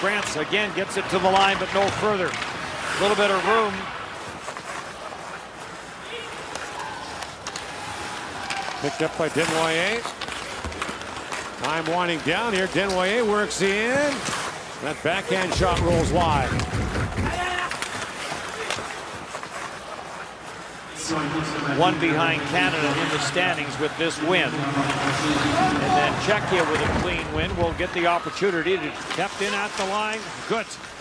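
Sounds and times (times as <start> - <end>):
hockey sticks and puck clacking: 0.0 - 20.9, 22.1 - 31.0
crowd noise: 0.0 - 31.0.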